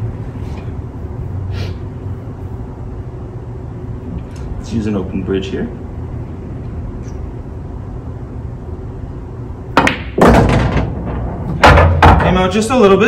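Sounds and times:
pool balls clacking: 9.7 - 12.6.

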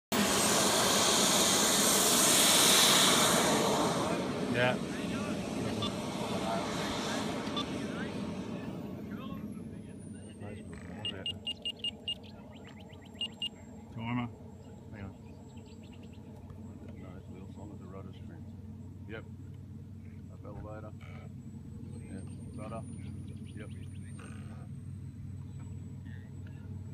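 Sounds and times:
jet turbine engine whine: 0.1 - 26.9.

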